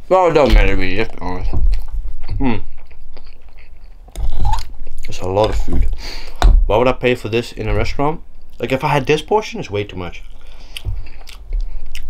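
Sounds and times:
wet chewing sounds: 0.9s - 6.0s, 10.3s - 12.0s.

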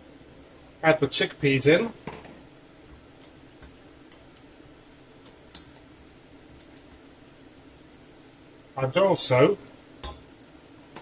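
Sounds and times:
spoon clicking against pot: 10.0s - 10.2s.

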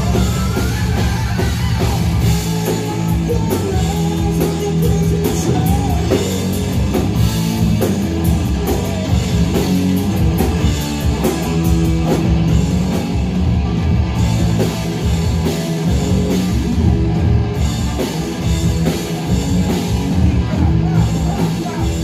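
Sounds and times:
drum kit: 0.0s - 22.0s
electric bass: 0.0s - 22.0s
electric guitar: 0.0s - 22.0s.

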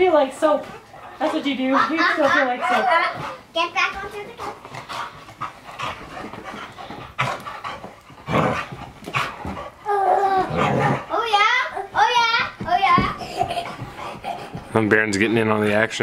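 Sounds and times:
dog panting: 0.0s - 16.0s
toddler squealing and shouting: 9.9s - 12.4s.

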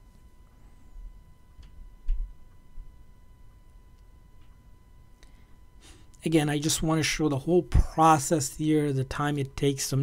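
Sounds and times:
faint high-pitched tone: 0.0s - 10.0s.

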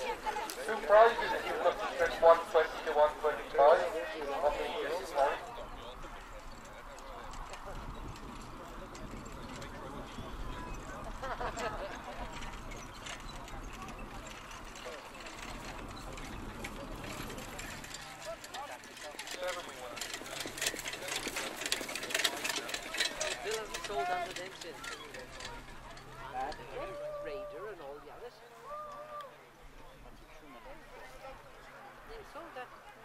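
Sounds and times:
horse hoofbeats clattering: 0.0s - 27.1s
sulky and harness rattling: 0.1s - 27.7s.

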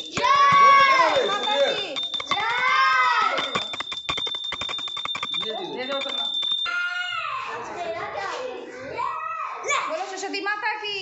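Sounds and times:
voices shouting in a stairwell: 0.0s - 3.6s, 6.6s - 10.2s
steady high-pitched tone: 1.2s - 6.7s.

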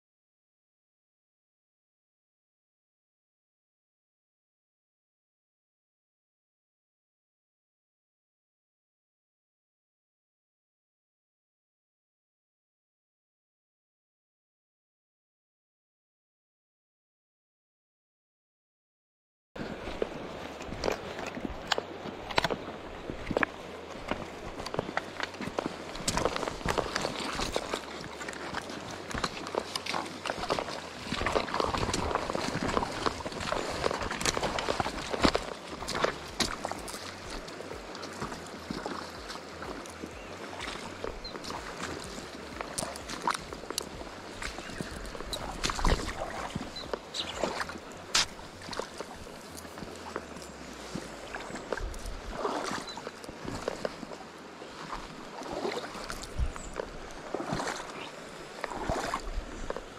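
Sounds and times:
river water rushing: 19.6s - 59.9s.

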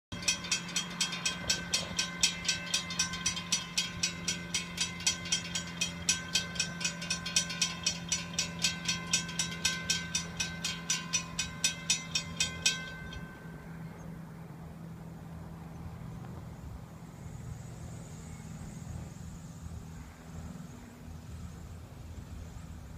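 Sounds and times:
railroad crossing bells ringing: 0.1s - 16.0s
low steady hum: 0.1s - 22.9s.

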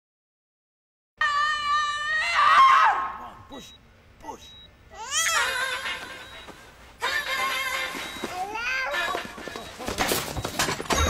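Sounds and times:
woman screaming: 1.2s - 3.4s.

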